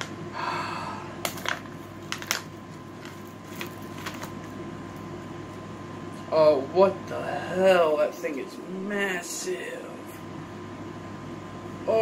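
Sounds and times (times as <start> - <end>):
faint room hum: 0.0 - 12.0
person sighing: 0.3 - 1.3
plastic packet crinkling: 1.3 - 5.1.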